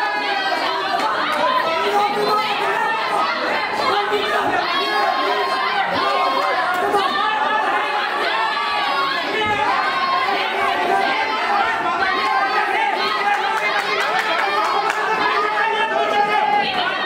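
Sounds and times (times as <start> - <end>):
crowd babble and calling out: 0.0 - 17.0.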